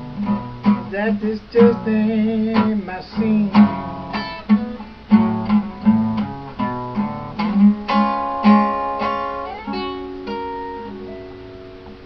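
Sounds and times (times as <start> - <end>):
acoustic guitar notes ringing: 0.0 - 12.0.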